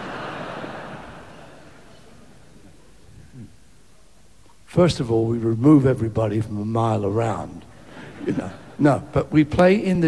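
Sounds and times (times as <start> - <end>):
audience laughing: 0.0 - 2.7, 7.8 - 9.1.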